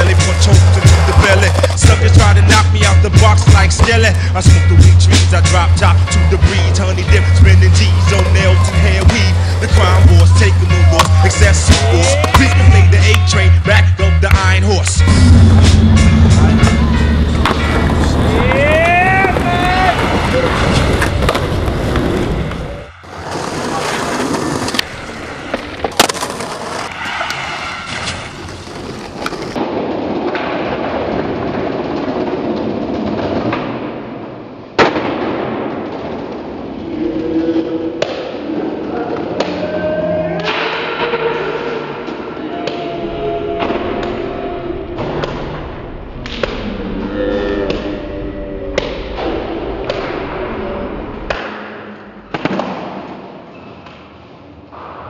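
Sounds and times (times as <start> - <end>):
skateboard wheels rolling: 0.0 - 13.5, 16.4 - 39.7
voices: 17.7 - 21.3, 36.8 - 45.6.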